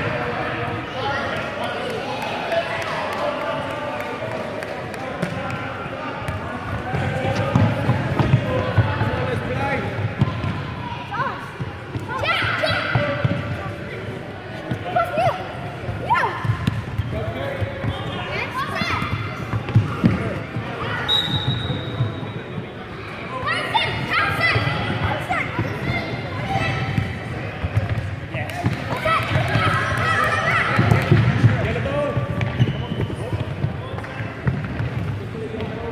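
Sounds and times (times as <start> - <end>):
children's voices echoing: 28.9 - 31.1.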